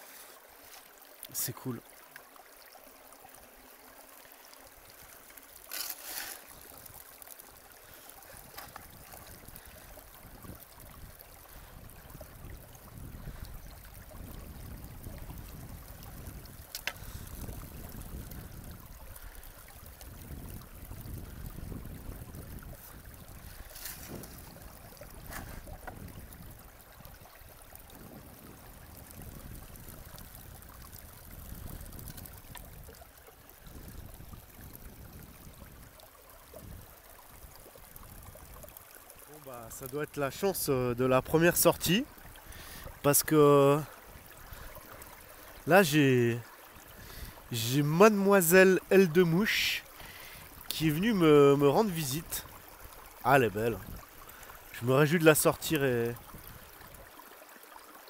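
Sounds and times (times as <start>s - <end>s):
river flowing: 0.0s - 58.0s
water running down sluice box: 0.0s - 58.0s.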